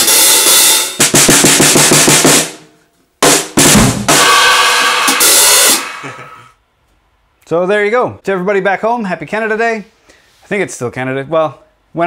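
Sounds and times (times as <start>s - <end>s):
cymbals crashing: 3.3s - 6.5s.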